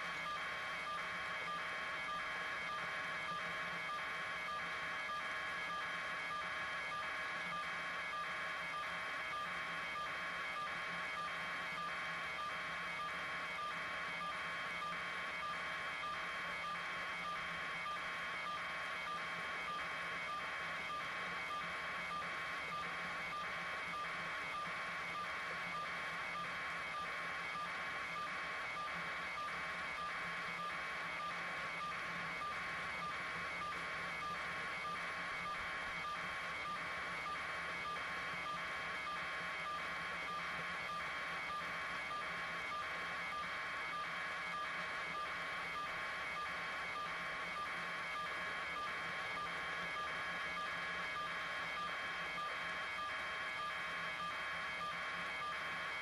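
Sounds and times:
faint steady tones: 0.0 - 56.0.

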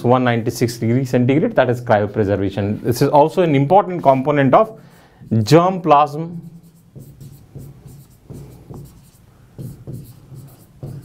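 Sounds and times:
chalk scratching on blackboard: 6.4 - 11.0.

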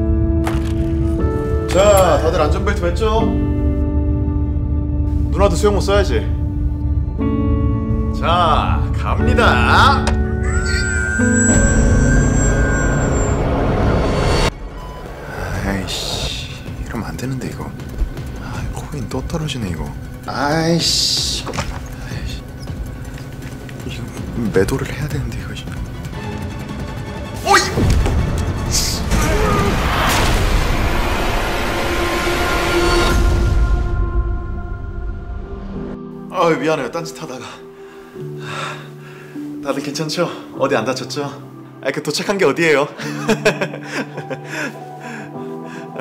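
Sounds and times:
dramatic music: 0.0 - 40.3
held low tone: 10.3 - 16.8.

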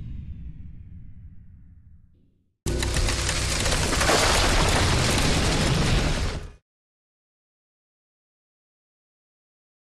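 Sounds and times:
explosion sound effect: 2.9 - 6.6.

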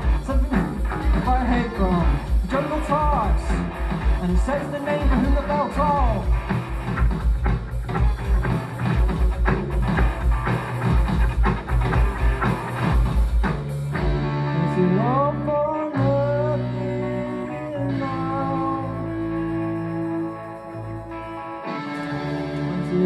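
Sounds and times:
drum kit beat: 0.0 - 15.2
bass guitar: 0.0 - 23.0
electric guitars: 0.0 - 23.0.

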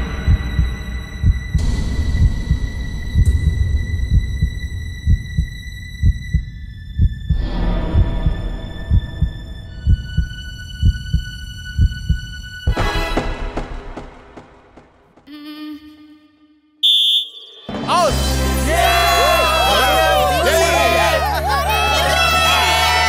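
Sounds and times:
heartbeat thumps: 0.0 - 15.3.

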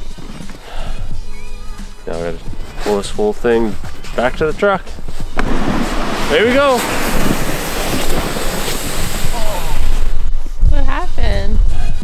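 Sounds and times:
wind buffeting microphone: 5.2 - 12.0.

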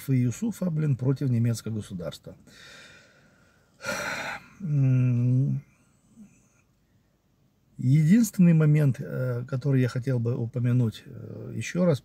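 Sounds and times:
man breathing in: 2.5 - 4.6
man humming: 3.8 - 5.6.

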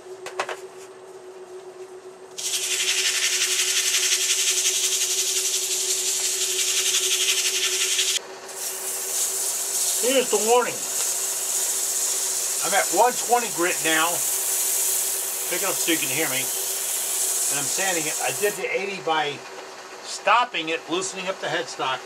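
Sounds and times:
lathe motor hum: 2.4 - 18.7
sandpaper sanding spinning wood: 2.4 - 18.7.

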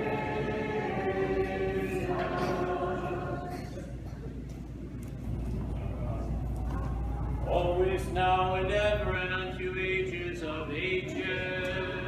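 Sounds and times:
faint voice murmuring: 2.3 - 7.6.

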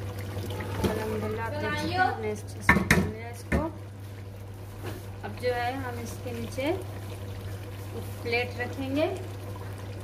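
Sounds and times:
curry bubbling in a pot: 0.0 - 10.0.

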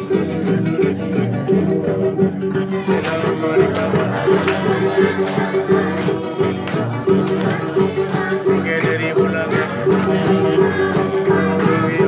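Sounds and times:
plucked string instrument music: 0.0 - 12.0.

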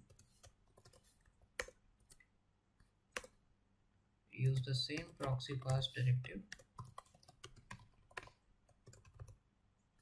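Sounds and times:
computer keyboard keystrokes: 1.6 - 2.2, 4.4 - 5.9, 6.5 - 9.4.

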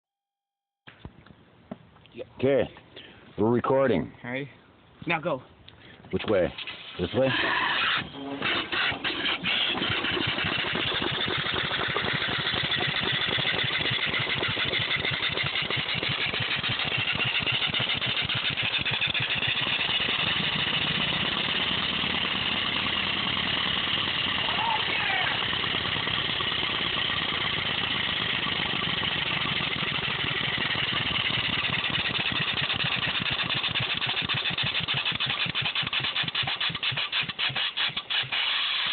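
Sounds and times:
steam engine exhaust beat: 8.4 - 38.9.

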